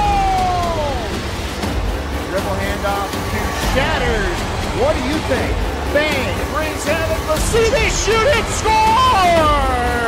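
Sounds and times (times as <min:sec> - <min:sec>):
faint music: 0:00.0 - 0:10.0
indistinct voices: 0:02.2 - 0:10.0.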